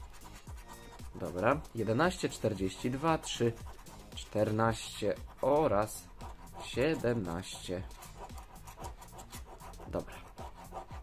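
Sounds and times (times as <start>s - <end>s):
spoon scraping scratch card: 0.0s - 11.0s.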